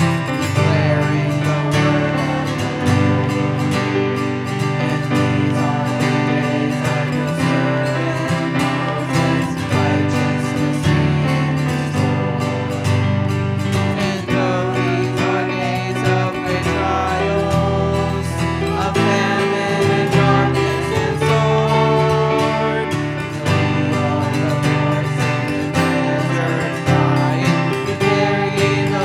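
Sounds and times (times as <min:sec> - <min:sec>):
group singing a worship chorus: 0:00.0 - 0:29.0
strummed acoustic guitar: 0:00.0 - 0:29.0.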